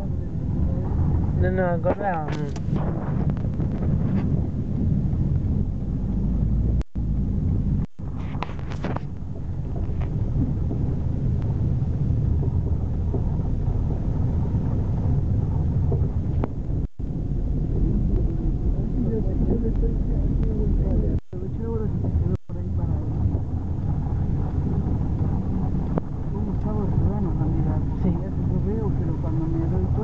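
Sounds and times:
car road and engine noise: 0:00.0 - 0:30.0
wind on microphone: 0:00.0 - 0:30.0.

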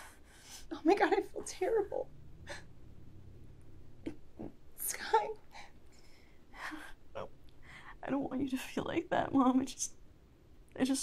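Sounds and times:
woman speaking softly: 0:00.7 - 0:02.1, 0:04.8 - 0:05.4, 0:10.8 - 0:11.0.

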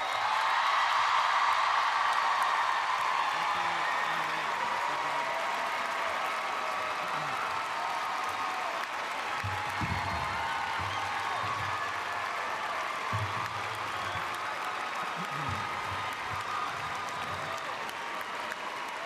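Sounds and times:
audience applause: 0:00.0 - 0:19.0.

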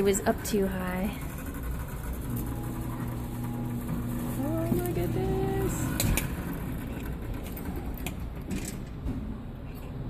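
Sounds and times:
claw machine humming: 0:00.0 - 0:09.0.

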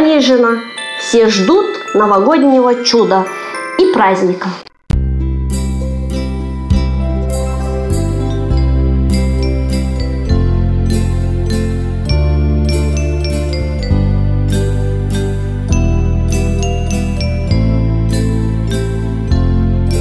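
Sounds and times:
high chiming melody: 0:00.0 - 0:20.0
sustained low chords: 0:05.0 - 0:13.1.

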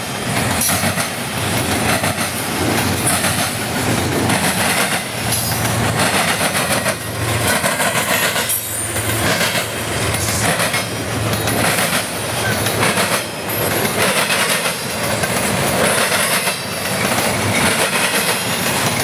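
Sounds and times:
freight train wheels rumbling: 0:00.0 - 0:19.0.

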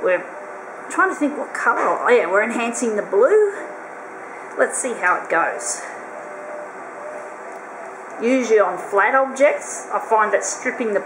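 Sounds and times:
copier whirring: 0:00.0 - 0:11.0.

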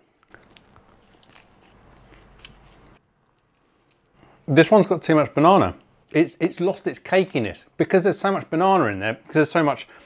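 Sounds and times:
man chewing food: 0:00.0 - 0:04.4.

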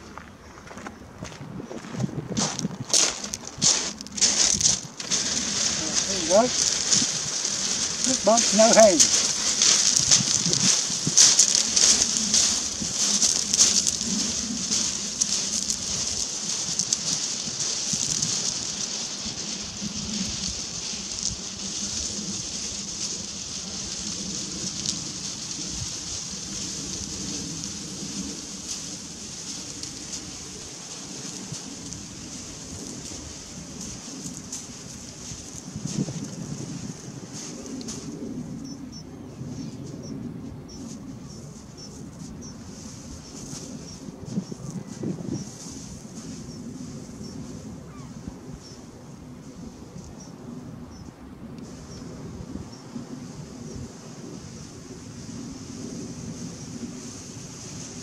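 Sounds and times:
barrow wheels on shingle: 0:00.0 - 0:38.6, 0:40.8 - 0:48.7
footsteps on shingle: 0:00.0 - 0:50.2, 0:51.6 - 0:58.0.

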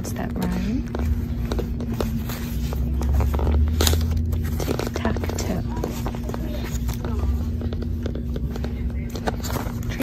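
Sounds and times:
paper pages rustling: 0:00.0 - 0:10.0.

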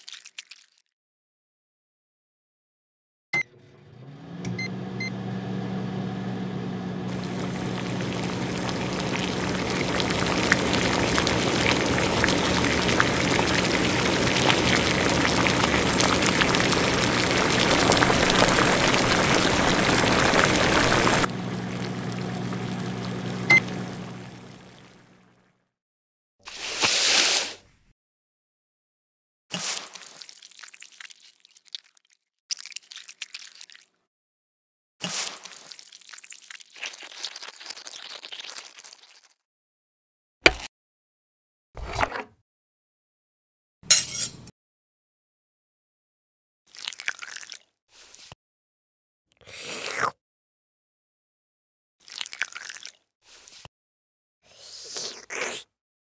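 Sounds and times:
liquid being poured: 0:00.0 - 0:00.8, 0:07.1 - 0:25.1, 0:30.0 - 0:33.9, 0:35.2 - 0:39.3, 0:46.7 - 0:47.6, 0:52.0 - 0:53.0
broth bubbling: 0:07.1 - 0:25.2
low electrical hum: 0:07.1 - 0:25.3.

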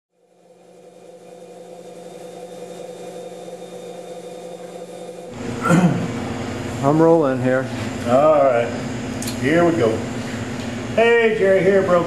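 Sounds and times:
low hum with held tones: 0:00.2 - 0:12.0
workshop room noise: 0:00.4 - 0:12.0.

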